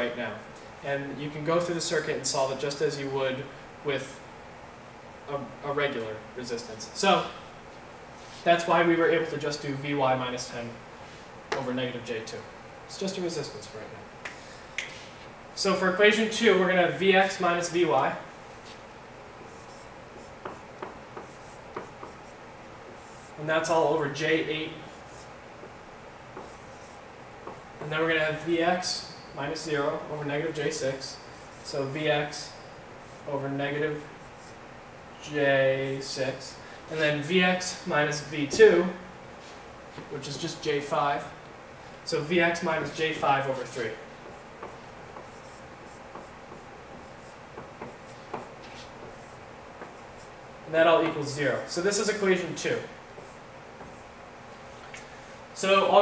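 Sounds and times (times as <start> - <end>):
marker writing on whiteboard: 19.4 - 23.7, 24.7 - 25.4, 26.3 - 28.4, 29.0 - 34.6, 42.5 - 50.4, 52.0 - 54.1
marker tapping on whiteboard: 20.4 - 22.2, 44.2 - 50.0.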